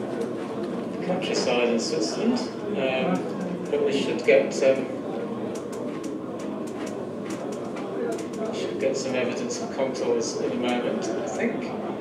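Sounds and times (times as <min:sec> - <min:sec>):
faint indistinct voices: 0:00.0 - 0:12.0.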